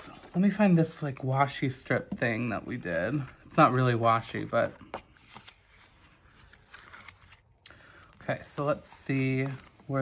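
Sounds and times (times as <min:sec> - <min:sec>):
paper pages rustling: 0:00.0 - 0:10.0.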